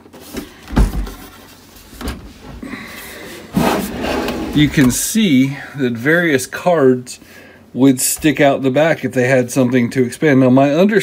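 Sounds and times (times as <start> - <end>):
metal case scraping on table: 3.5 - 5.0.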